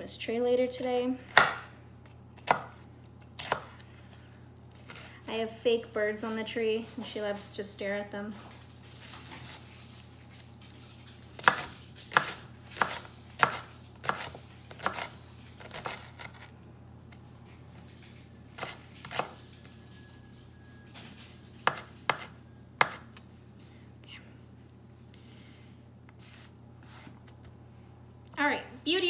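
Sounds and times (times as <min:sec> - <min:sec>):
knife chopping on wooden board: 0:01.3 - 0:01.7, 0:02.4 - 0:02.8, 0:03.4 - 0:03.8, 0:11.4 - 0:16.4, 0:21.6 - 0:23.1.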